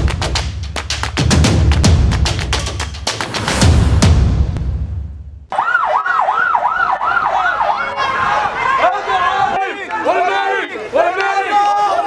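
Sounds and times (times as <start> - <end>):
police siren wailing: 5.5 - 8.8
crowd shouting: 5.8 - 12.0.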